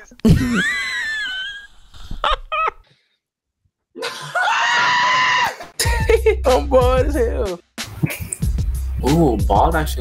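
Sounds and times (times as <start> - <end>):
person screaming in fright: 4.2 - 5.7.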